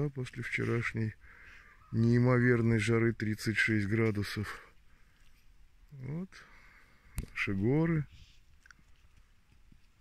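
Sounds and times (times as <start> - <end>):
faint small clicks: 8.5 - 10.0.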